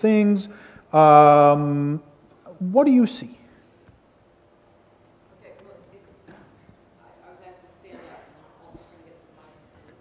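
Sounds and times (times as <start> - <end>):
faint voices in a hall: 1.3 - 10.0.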